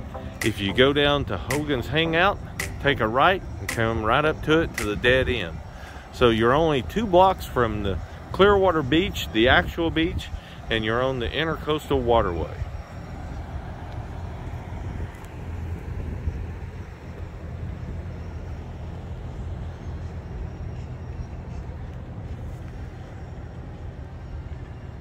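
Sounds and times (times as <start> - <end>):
faint hum: 0.0 - 11.8
low outdoor rumble: 0.0 - 25.0.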